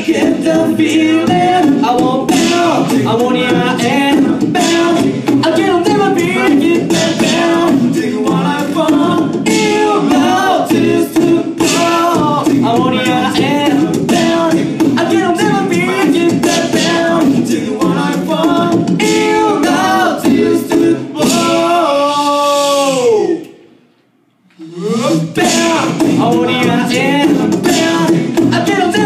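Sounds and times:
male a cappella group singing: 0.0s - 23.5s, 24.6s - 29.0s.

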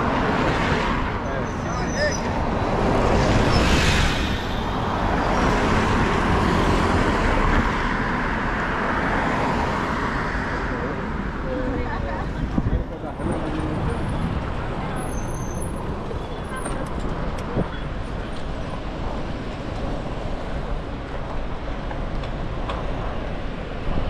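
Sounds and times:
cars passing: 0.0s - 24.0s
wind rumble on microphone: 10.9s - 15.1s, 15.7s - 24.0s.

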